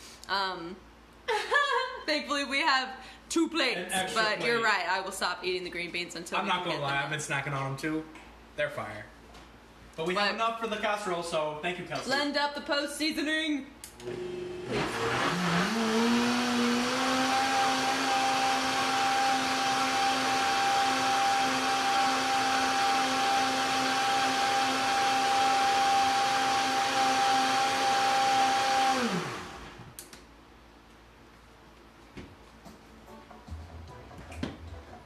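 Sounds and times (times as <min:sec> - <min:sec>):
blender motor running: 0:14.0 - 0:30.0.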